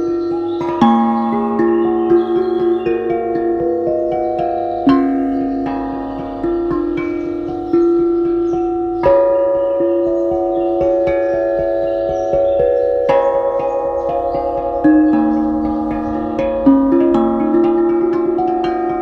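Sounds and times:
ringing pitched percussion notes: 0.0s - 19.0s.

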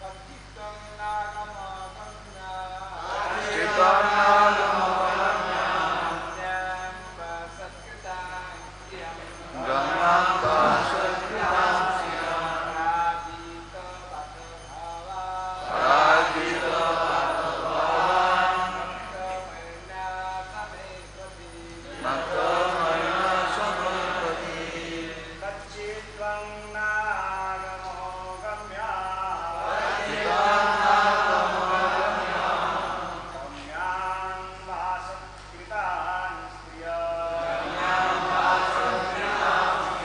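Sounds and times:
voices chanting melodically: 0.0s - 35.2s, 36.0s - 40.0s.

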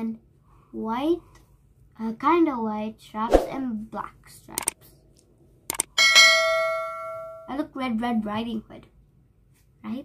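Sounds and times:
mouse clicks: 4.5s - 4.8s.

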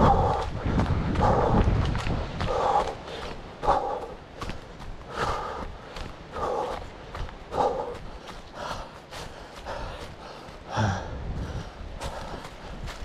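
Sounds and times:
heavy breathing: 0.0s - 1.7s, 2.4s - 13.0s
running footsteps on dirt trail: 0.0s - 13.0s.

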